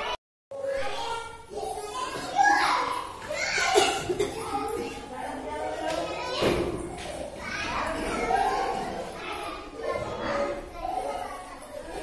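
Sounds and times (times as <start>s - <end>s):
children chattering and playing: 0.0s - 12.0s.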